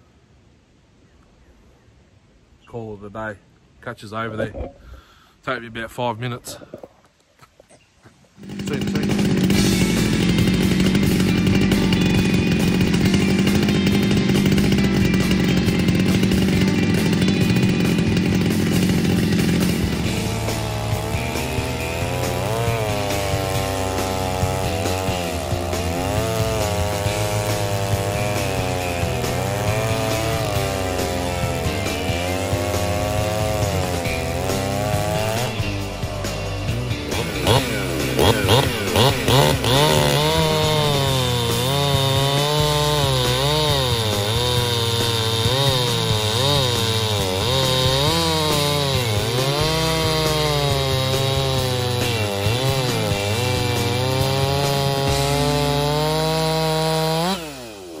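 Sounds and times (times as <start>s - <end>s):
chainsaw cutting log: 8.4s - 58.0s.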